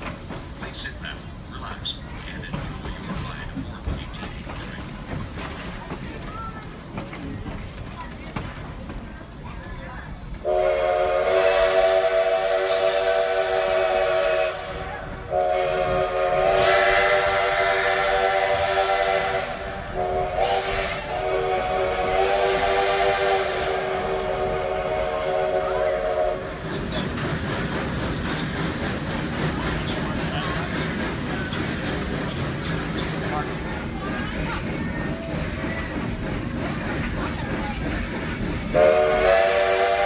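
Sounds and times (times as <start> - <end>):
moving train hiss and rumble: 0.0 - 40.0
steam locomotive whistle blasts: 10.4 - 26.5, 38.7 - 40.0.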